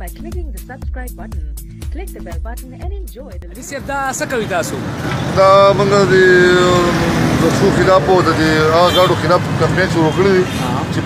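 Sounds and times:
traffic rumble: 0:00.0 - 0:11.0
people's voices: 0:02.0 - 0:11.0.

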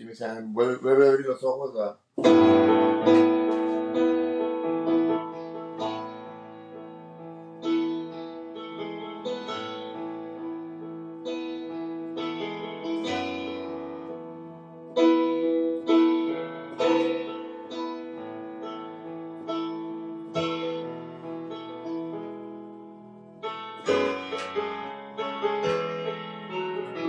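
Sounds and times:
electronic keyboard chords: 0:02.2 - 0:27.0.

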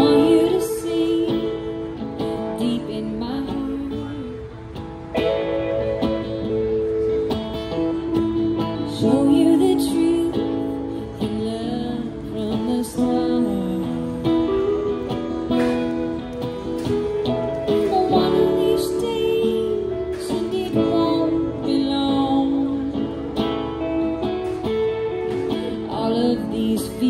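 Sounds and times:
woman singing: 0:00.0 - 0:05.3, 0:08.1 - 0:15.9, 0:17.2 - 0:23.6, 0:25.4 - 0:27.0
acoustic guitar: 0:00.0 - 0:27.0
electric guitar: 0:00.0 - 0:27.0.

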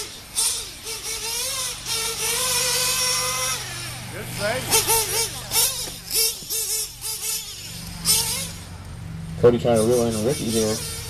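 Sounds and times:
steady low hum: 0:00.0 - 0:11.0
toy truck motors revving: 0:00.0 - 0:11.0.

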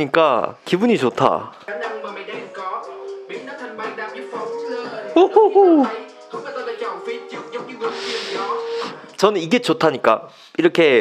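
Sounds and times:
man rapping over a beat: 0:00.0 - 0:11.0.

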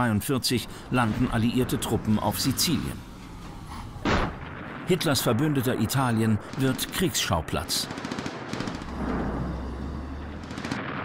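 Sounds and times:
low continuous rumble: 0:00.0 - 0:06.8
rapid automatic gunfire: 0:06.2 - 0:09.5, 0:10.3 - 0:11.0.

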